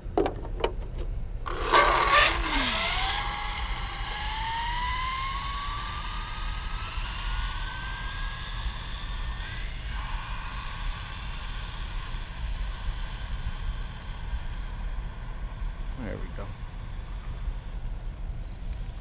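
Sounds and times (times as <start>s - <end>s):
electric motor whine accelerating: 1.5s - 17.7s.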